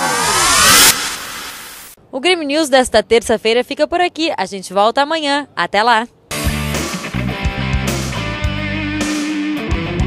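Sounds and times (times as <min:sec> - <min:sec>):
whoosh with gliding tones: 0:00.0 - 0:02.0.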